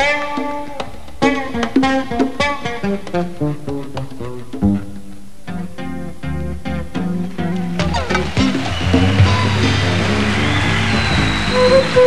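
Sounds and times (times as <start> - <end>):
electric bass plucked notes: 1.2 - 12.0.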